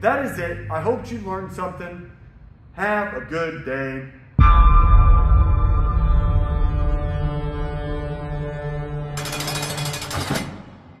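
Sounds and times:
low synth drone: 4.4s - 10.1s.

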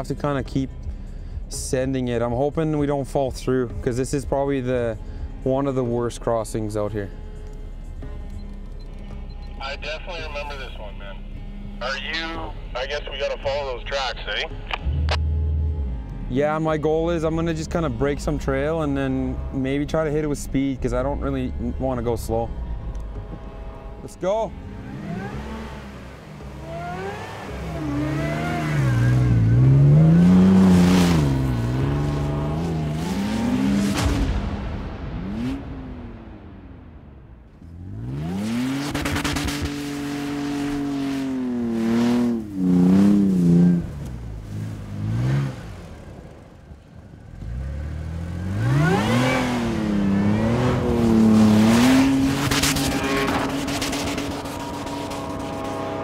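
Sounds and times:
truck engine revving hard: 24.5s - 37.0s, 37.6s - 46.6s, 47.2s - 56.0s.

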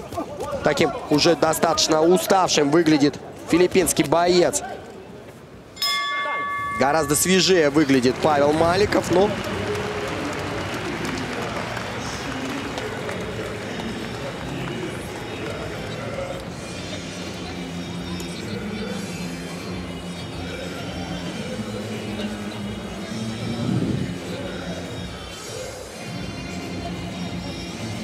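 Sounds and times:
crowd chatter: 0.0s - 28.0s.

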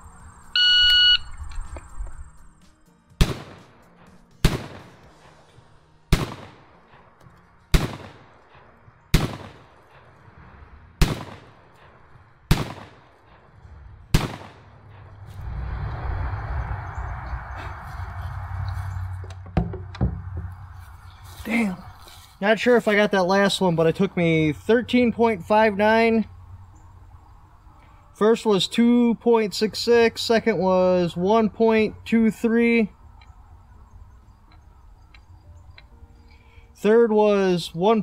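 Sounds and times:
shotgun shots: 3.2s - 3.8s, 4.4s - 5.1s, 6.1s - 7.1s, 7.7s - 10.1s, 11.0s - 13.5s, 14.1s - 15.0s
steady rushing noise: 7.9s - 26.2s.

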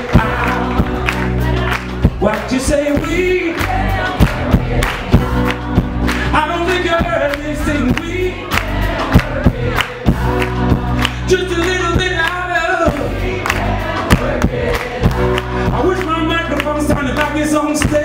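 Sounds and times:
live band playing: 0.0s - 18.0s
man singing: 0.0s - 18.0s.

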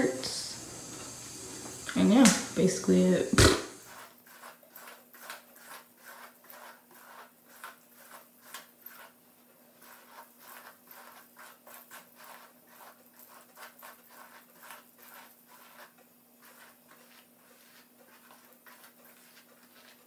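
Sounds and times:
hairbrush strokes through hair: 1.5s - 9.2s, 9.8s - 20.0s.

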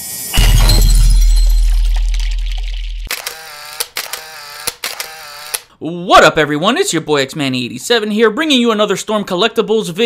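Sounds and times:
sharp shutter-like clicks: 3.1s - 5.7s.

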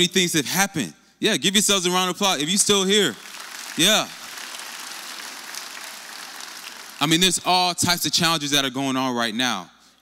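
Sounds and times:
audience applauding: 2.9s - 7.5s.

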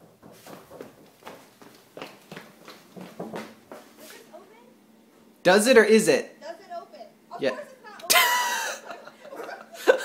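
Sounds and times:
quick footsteps on tiled floor: 0.0s - 4.3s.

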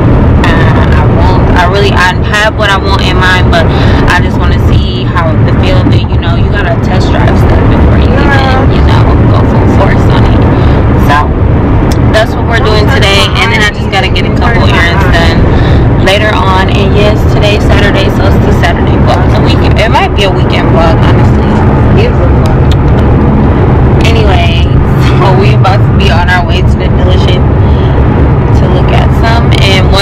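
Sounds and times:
car rumbling on the road: 0.0s - 30.0s
woman talking: 0.4s - 22.6s, 24.0s - 27.9s, 28.5s - 30.0s.

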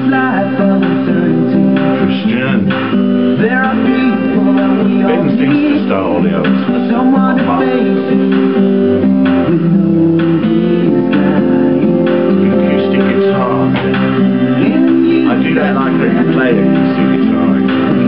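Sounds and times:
male vocals: 0.0s - 8.6s, 9.4s - 18.0s
pop song: 0.0s - 18.0s
strummed acoustic guitar: 0.0s - 18.0s.

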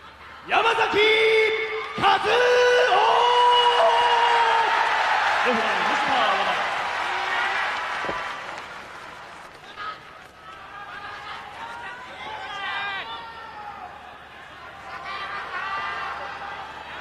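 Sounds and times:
crowd cheering and applauding: 1.8s - 9.6s.

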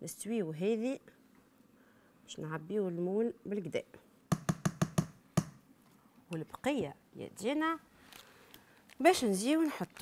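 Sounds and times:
spatula tapping metal tin: 4.3s - 5.6s.

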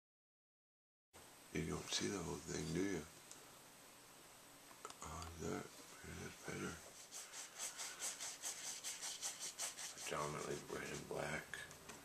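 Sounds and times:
paintbrush scrubbing on canvas: 6.3s - 11.4s.

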